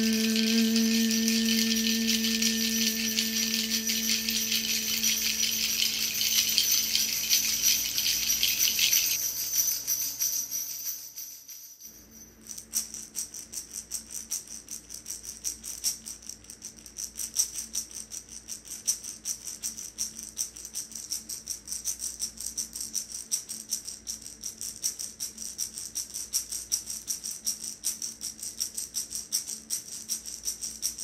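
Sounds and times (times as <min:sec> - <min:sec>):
faint low hum: 0:00.0 - 0:09.2
hand rattle shaken rhythmically: 0:00.0 - 0:31.0.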